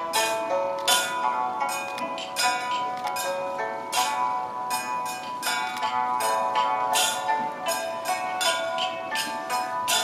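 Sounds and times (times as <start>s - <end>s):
held ritual melody: 0.0s - 10.0s
ringing metallic percussion: 0.0s - 10.0s.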